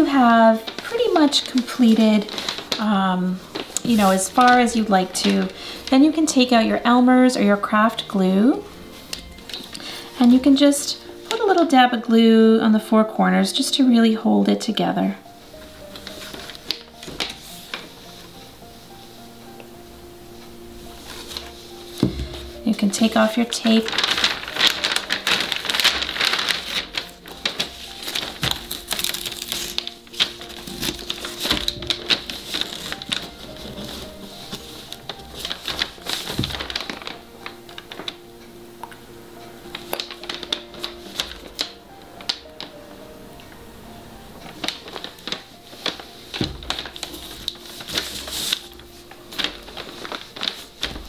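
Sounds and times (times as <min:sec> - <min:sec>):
paper strips rustling: 0:00.0 - 0:12.2, 0:15.3 - 0:19.7, 0:20.3 - 0:51.0
soft background music: 0:00.0 - 0:51.0
masking tape being peeled: 0:15.5 - 0:18.5, 0:20.9 - 0:22.6, 0:23.3 - 0:38.2, 0:39.7 - 0:42.8, 0:44.4 - 0:51.0.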